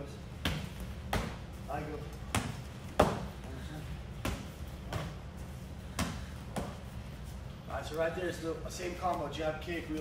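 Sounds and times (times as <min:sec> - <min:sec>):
padded strikes thudding: 0:00.3 - 0:07.0.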